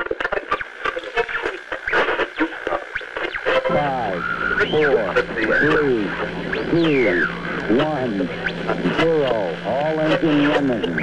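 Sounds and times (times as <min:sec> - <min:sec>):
crackly radio voice chatter: 0:00.0 - 0:11.0.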